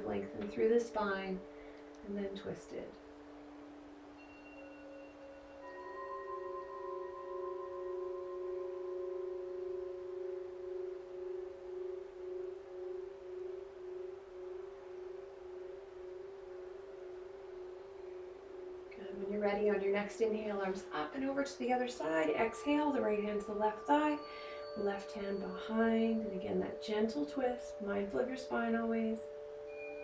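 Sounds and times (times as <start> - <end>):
ambient music with sustained tones: 0.0 - 30.0.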